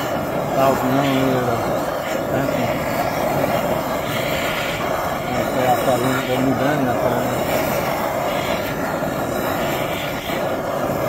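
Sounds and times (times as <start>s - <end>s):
gas torch roaring: 0.0s - 11.0s.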